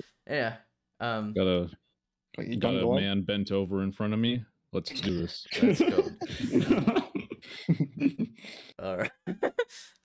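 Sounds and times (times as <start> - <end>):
people chuckling: 5.0 - 8.4.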